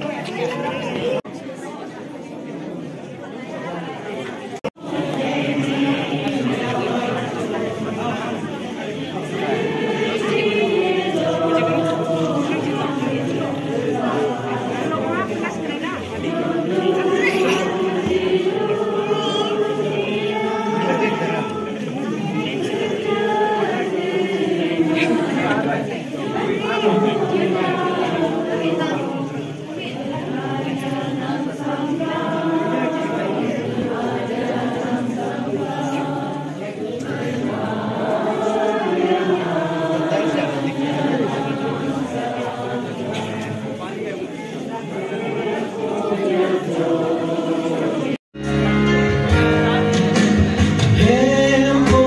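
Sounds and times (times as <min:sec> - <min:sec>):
choir singing: 0:04.5 - 0:52.0.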